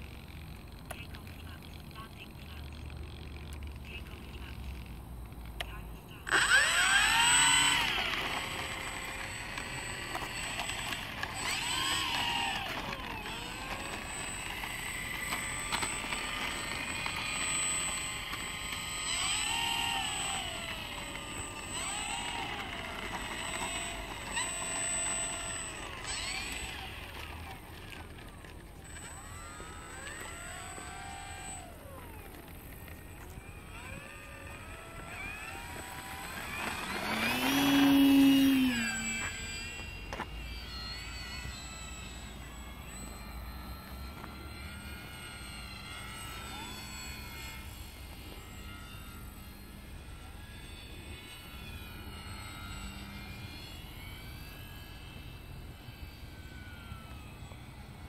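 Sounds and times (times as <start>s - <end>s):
model plane motor whining: 0.0s - 58.0s.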